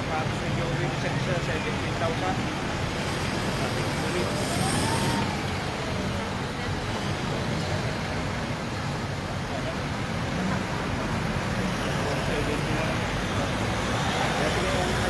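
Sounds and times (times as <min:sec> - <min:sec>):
faint voices: 0:00.0 - 0:15.0
vehicle engines and tyres on road: 0:00.0 - 0:15.0
rising and falling tone: 0:04.3 - 0:06.0.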